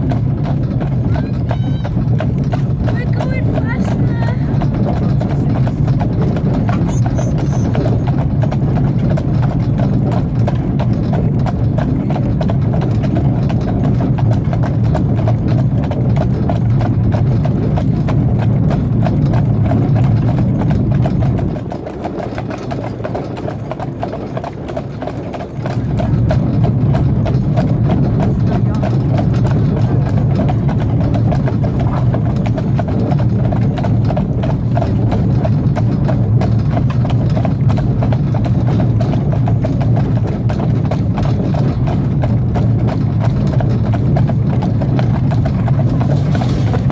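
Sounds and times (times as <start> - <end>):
horse hooves clip-clopping on tarmac: 0.0 - 46.9
steady low rumble: 0.0 - 46.9.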